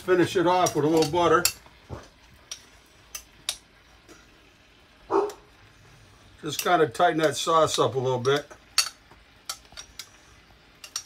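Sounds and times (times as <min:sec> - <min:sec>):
metal tongs clinking on plate: 0:00.6 - 0:01.7, 0:08.2 - 0:10.1, 0:10.8 - 0:11.0.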